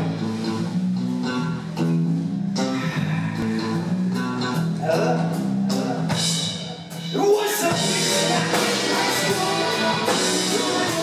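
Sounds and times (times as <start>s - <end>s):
electric guitars playing a riff: 0.0s - 11.0s.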